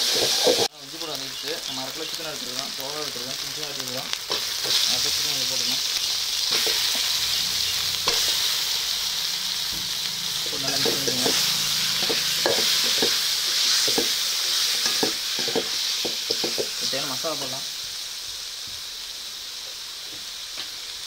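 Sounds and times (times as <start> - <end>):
chicken sizzling in hot oil: 0.0 - 21.0.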